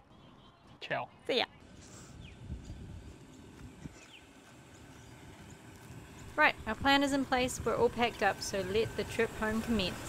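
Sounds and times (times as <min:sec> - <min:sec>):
faint bird chirps: 0:00.0 - 0:02.5
low rumble: 0:01.6 - 0:10.0.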